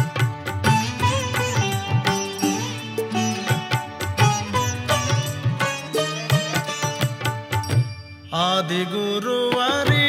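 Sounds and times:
tabla strokes: 0.0s - 10.0s.

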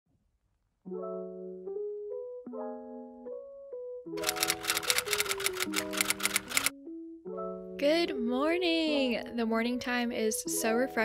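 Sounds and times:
soft melodic background music: 0.8s - 11.0s
typewriter key clacks: 4.2s - 6.7s.

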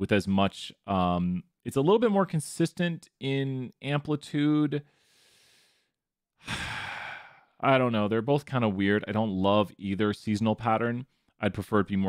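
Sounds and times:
man sighing: 6.4s - 7.5s.

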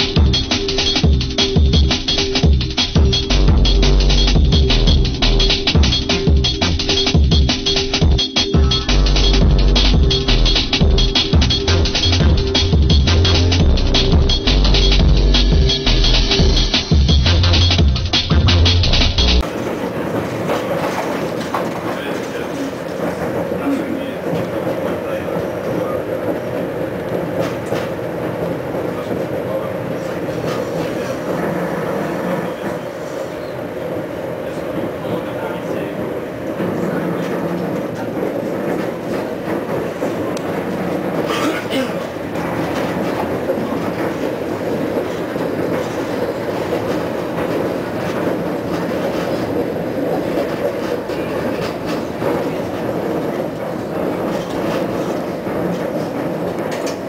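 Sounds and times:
tram rumbling at speed: 0.0s - 57.0s
wheels clicking over rail joints: 19.3s - 57.0s.

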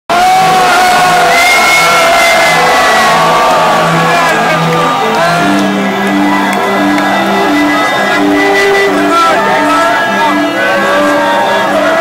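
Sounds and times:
crowd cheering and shouting: 0.1s - 12.0s
loud music: 0.1s - 12.0s.

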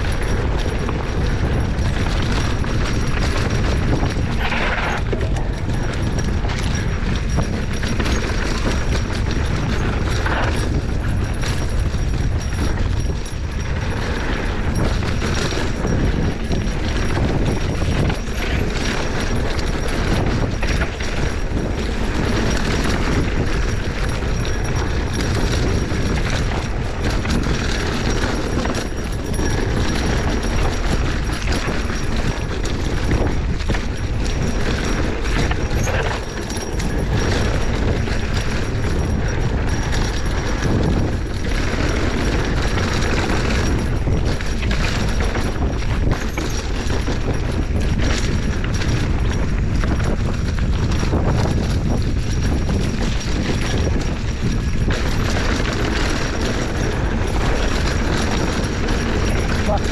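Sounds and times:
bike rattling over rough ground: 0.0s - 59.9s
bike tyre noise: 0.0s - 59.9s
wind rumble on microphone: 0.0s - 59.9s.

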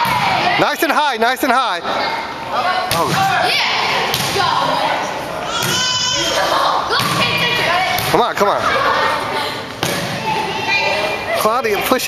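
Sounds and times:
people shouting and cheering: 2.0s - 12.0s
volleyball being struck: 2.9s - 3.3s, 4.0s - 4.5s, 9.8s - 10.2s.

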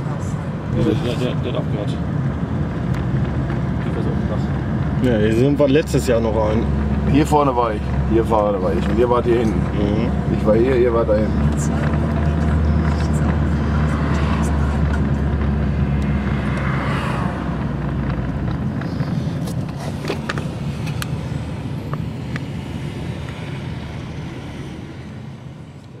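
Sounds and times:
car engine drone: 0.0s - 26.0s
road noise inside car: 0.0s - 26.0s.

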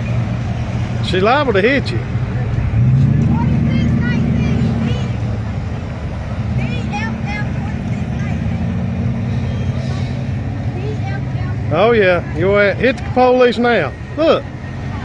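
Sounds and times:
vehicle engines humming in traffic: 0.0s - 15.0s
faint voices: 1.0s - 15.0s.

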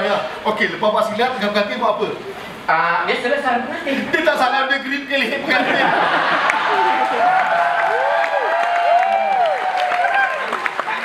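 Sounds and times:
crowd noise: 5.2s - 11.0s
audience applauding: 6.0s - 11.0s.

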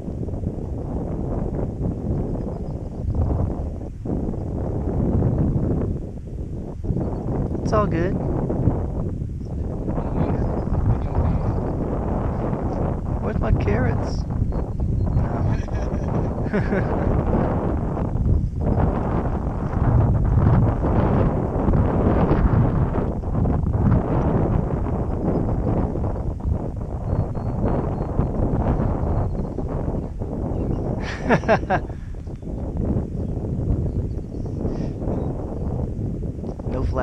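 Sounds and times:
wind buffeting microphone: 0.0s - 37.0s.

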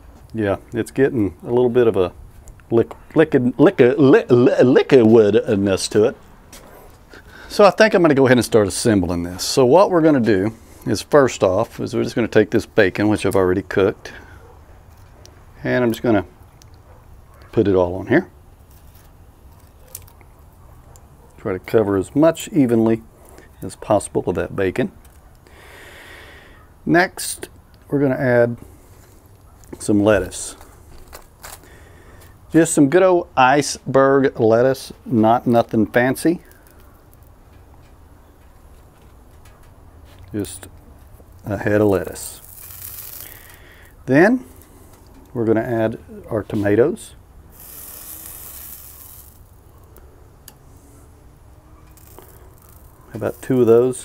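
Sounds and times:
man speaking: 0.3s - 6.2s, 7.5s - 14.2s, 17.5s - 18.3s, 21.4s - 23.0s, 26.8s - 28.6s, 29.8s - 30.6s, 32.5s - 36.5s, 40.3s - 40.7s, 41.4s - 42.5s, 44.0s - 44.6s, 45.3s - 47.2s, 53.1s - 54.0s
man breathing in: 25.4s - 26.7s, 31.6s - 32.4s, 43.2s - 44.0s
griddle sizzling: 36.2s - 37.8s, 41.3s - 45.0s, 46.5s - 54.0s.

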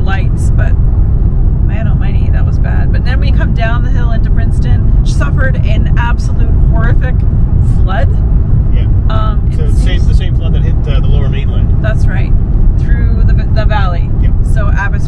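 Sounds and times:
people talking: 0.0s - 0.7s, 1.7s - 8.2s, 8.8s - 15.0s
car cabin road rumble: 0.0s - 15.0s.

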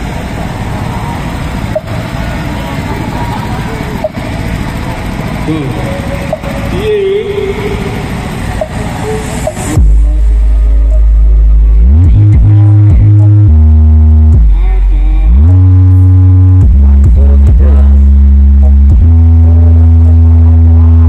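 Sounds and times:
crowd noise: 0.0s - 21.0s
deep bass from sound system: 0.0s - 21.0s.

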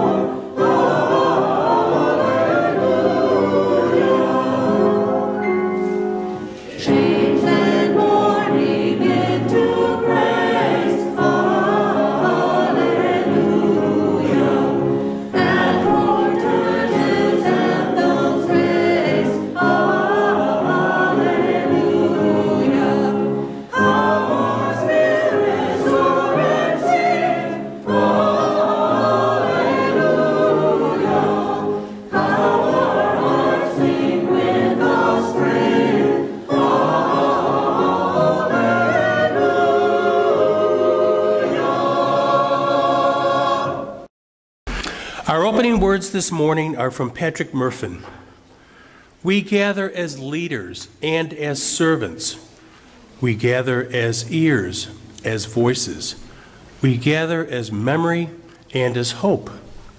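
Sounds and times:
mixed choir singing: 0.0s - 44.1s.

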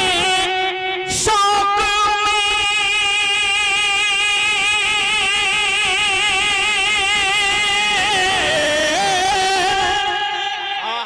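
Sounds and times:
man singing into a microphone: 0.0s - 11.0s.

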